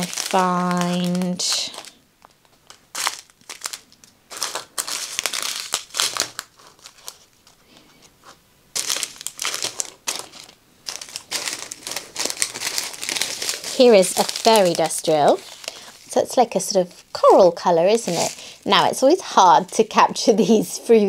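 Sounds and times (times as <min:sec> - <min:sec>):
plastic bags crinkling: 0:00.0 - 0:07.8, 0:08.7 - 0:20.7.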